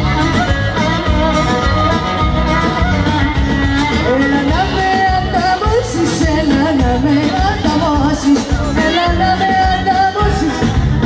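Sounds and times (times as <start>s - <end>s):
folk dance music through speakers: 0.0s - 11.0s
person singing: 0.0s - 11.0s
steady drum beat: 0.0s - 11.0s.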